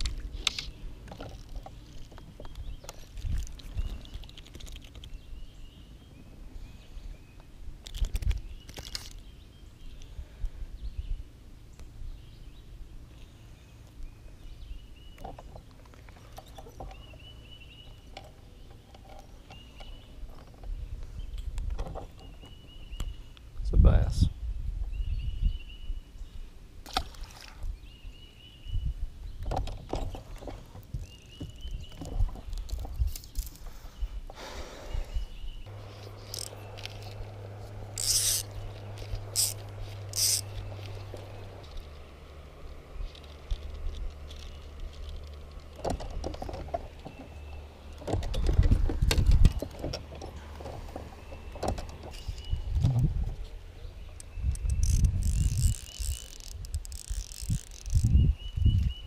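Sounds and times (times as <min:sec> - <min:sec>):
fly line rustling and clicking: 0:00.0 - 0:05.2, 0:07.8 - 0:09.3, 0:35.8 - 0:47.2, 0:54.2 - 0:58.2
electric trolling motor hum: 0:35.7 - 0:48.0.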